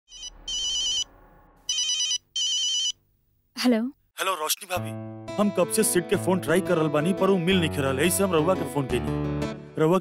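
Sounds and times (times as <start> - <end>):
phone ringtone trill: 0.1 - 1.1, 1.7 - 3.0.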